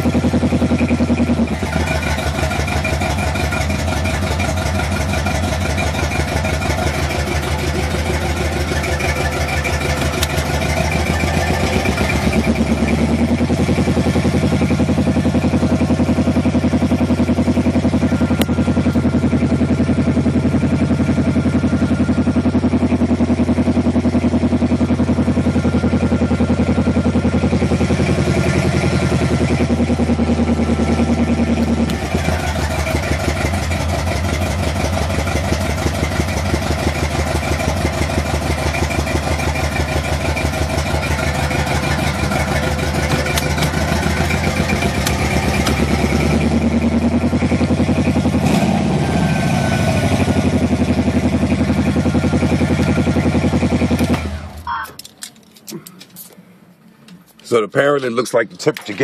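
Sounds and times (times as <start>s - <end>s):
car engine fast idle: 0.0s - 54.8s
engine revving: 0.0s - 54.8s.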